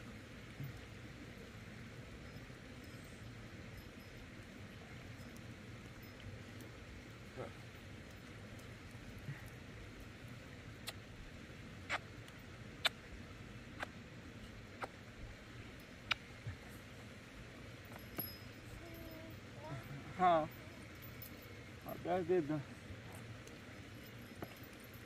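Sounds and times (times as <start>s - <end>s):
outdoor background noise: 0.0s - 25.0s
faint clicks: 16.0s - 16.4s.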